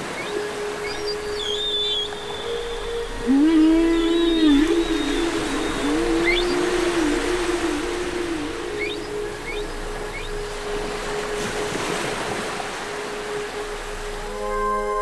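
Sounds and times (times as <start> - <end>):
low wavering gliding tone: 0.0 - 15.0
soft wash of noise: 0.0 - 15.0
electronic drone: 0.8 - 12.4.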